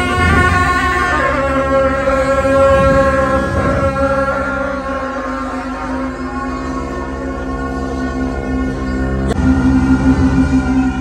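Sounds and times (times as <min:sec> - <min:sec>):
reedy horns playing high note: 0:00.0 - 0:11.0.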